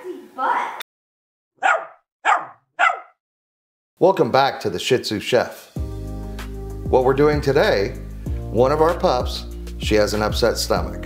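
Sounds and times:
dog barking: 1.6 - 3.2.

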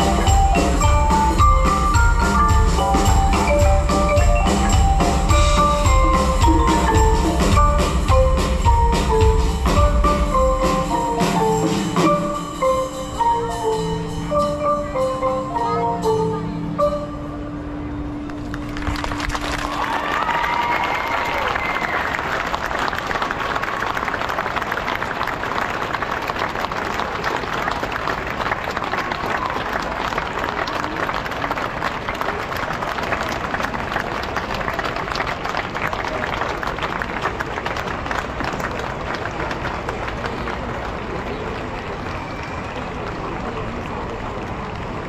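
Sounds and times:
ensemble music held note: 9.5 - 18.8
large crowd applauding: 18.3 - 45.0.

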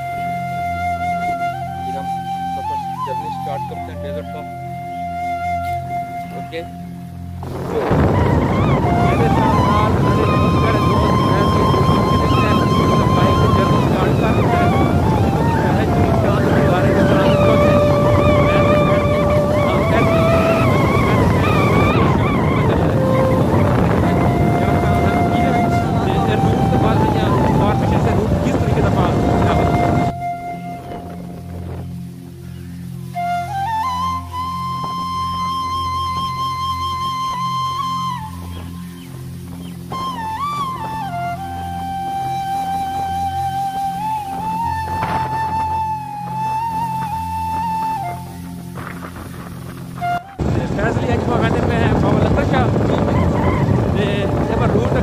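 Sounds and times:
music of long held notes: 0.0 - 55.0
wavering melody: 0.0 - 55.0
wind noise on microphone: 0.0 - 55.0
motorbike road noise: 7.3 - 33.9, 38.4 - 55.0.

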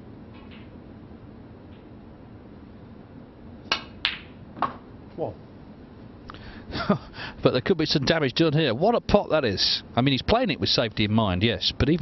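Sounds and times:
cue tip striking ball: 3.7 - 4.9.

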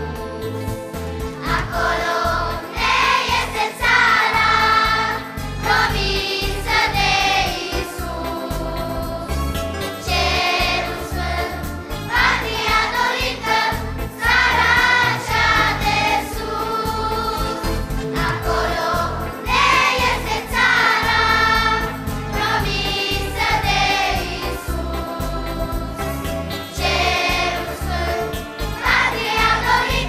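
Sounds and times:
instrumental accompaniment: 0.0 - 30.0
children's choir singing a hymn: 1.3 - 30.0.

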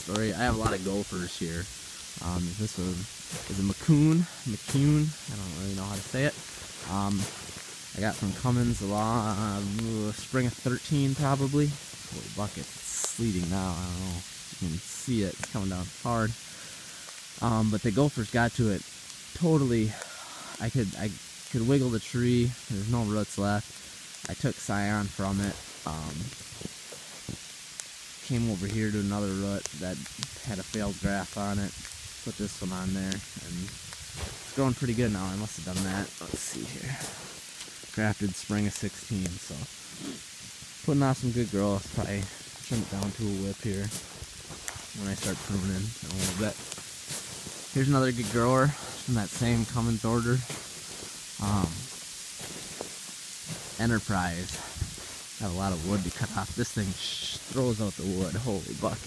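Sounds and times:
sleet falling with hiss: 0.0 - 59.0
faint ticks: 16.4 - 17.4.

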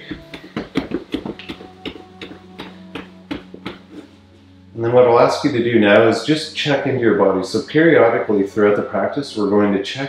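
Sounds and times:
legs tapping on a mat: 0.0 - 4.2
cloth rustle: 3.4 - 4.5.

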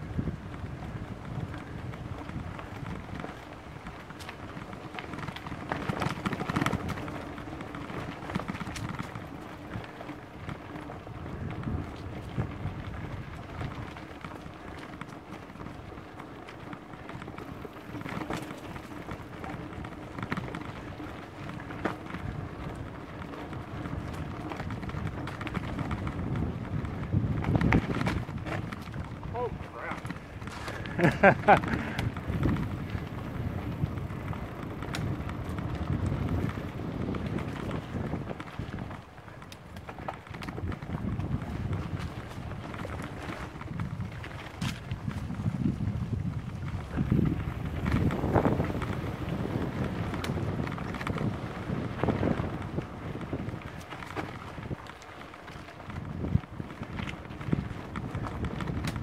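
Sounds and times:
bike rattling over bumps: 0.0 - 59.0
bike tyres rolling on dirt: 0.0 - 59.0.

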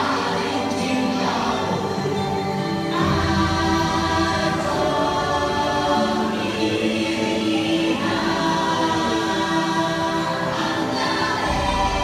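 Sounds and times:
choir singing over sustained music: 0.0 - 12.0.

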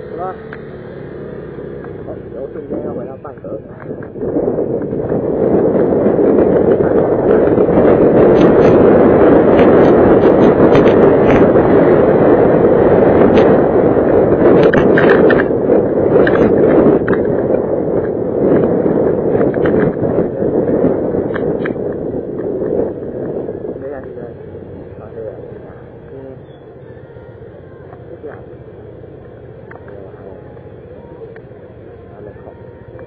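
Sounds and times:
loud wind noise: 0.0 - 33.0
motorcycle running: 0.0 - 33.0.

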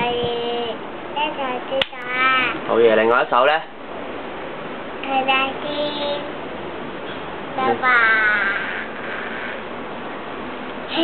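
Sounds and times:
toddler reciting sing-song: 0.0 - 2.7, 5.0 - 6.4, 7.5 - 8.9.

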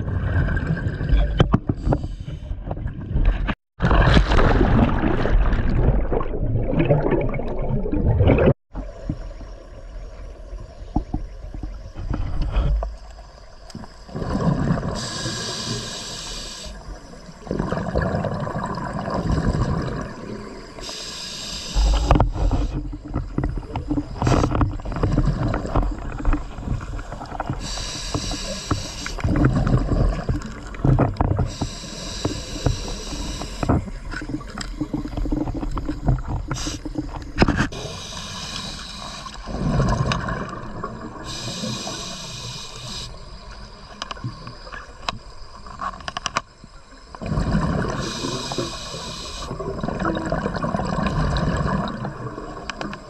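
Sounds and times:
exhaled bubbles rumbling: 0.0 - 15.2, 16.7 - 20.8, 21.8 - 31.6, 32.2 - 38.2, 39.0 - 42.0, 47.2 - 48.6, 49.5 - 53.0
diver inhaling through regulator: 14.9 - 16.8, 20.8 - 22.8, 27.6 - 29.2, 31.5 - 33.7, 37.7 - 39.6, 41.2 - 43.2, 47.9 - 49.6.

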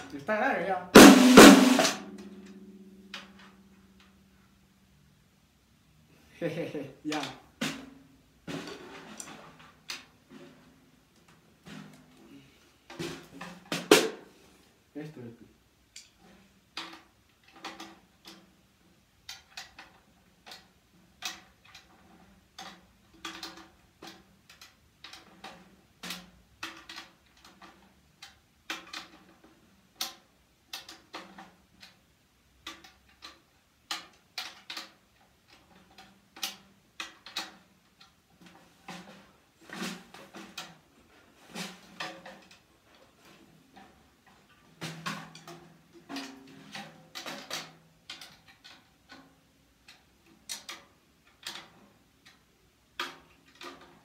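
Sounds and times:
taps on snare drum head: 13.0 - 14.3.

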